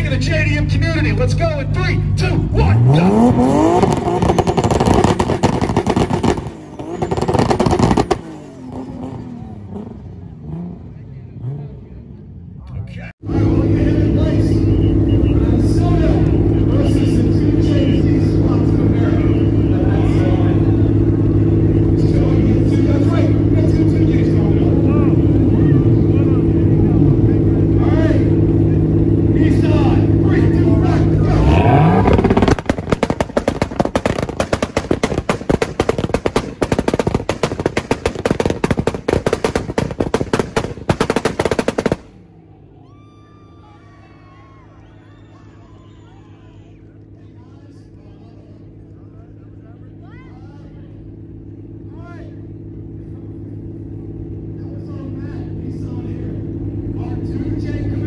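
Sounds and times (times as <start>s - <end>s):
car engines revving high: 0.0s - 58.0s
exhaust pops and bangs: 2.2s - 9.2s, 28.3s - 42.2s.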